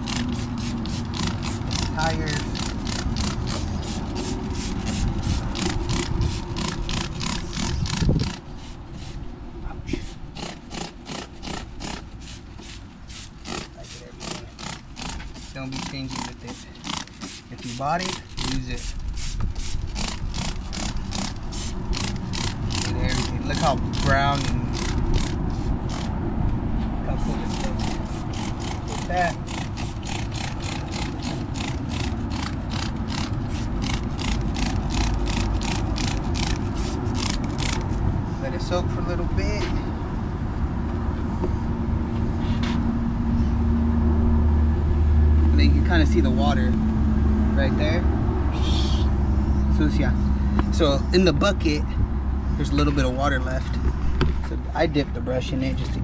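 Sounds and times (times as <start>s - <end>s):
spray bottle hissing sprays: 0.0s - 9.2s, 11.1s - 26.1s, 27.5s - 37.9s.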